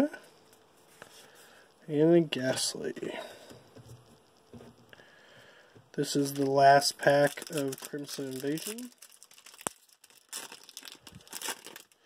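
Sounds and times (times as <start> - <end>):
foil wrapper crinkling: 6.0 - 12.0.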